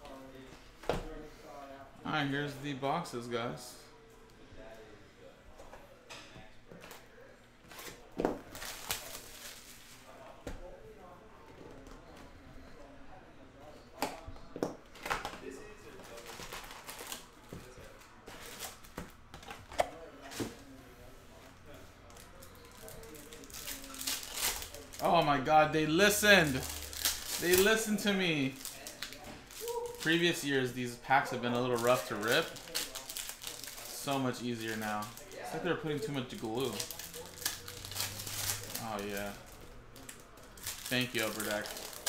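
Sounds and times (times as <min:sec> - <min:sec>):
cardboard and wrapper rustling: 0:07.7 - 0:10.2, 0:22.1 - 0:25.3, 0:25.9 - 0:30.4, 0:31.5 - 0:42.0.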